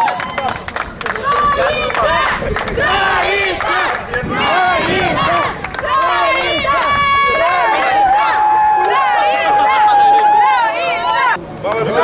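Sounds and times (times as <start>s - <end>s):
people clapping: 0.0s - 12.0s.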